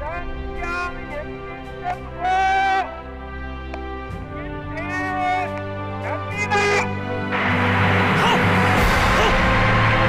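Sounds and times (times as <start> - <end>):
background music: 0.0 - 10.0
man speaking on radio: 4.7 - 7.0.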